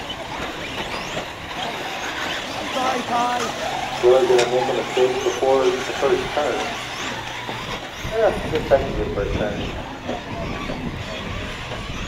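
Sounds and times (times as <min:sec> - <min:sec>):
rc cars tyre and drivetrain noise: 0:00.0 - 0:12.0
rising electric motor whines: 0:00.0 - 0:12.0.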